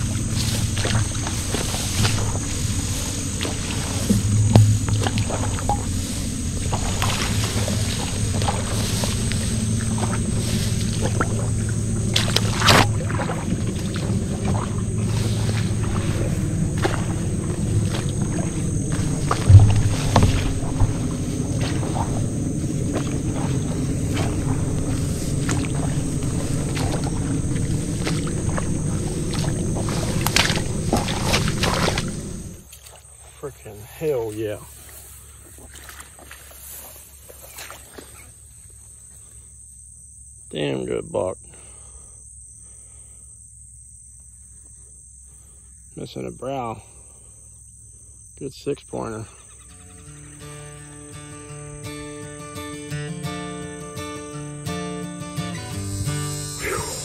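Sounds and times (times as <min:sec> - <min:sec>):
footsteps through tall grass: 0:00.0 - 0:38.8.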